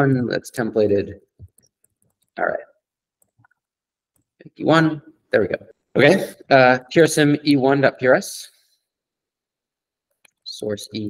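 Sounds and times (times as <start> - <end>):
keyboard keys typing: 1.4 - 2.4.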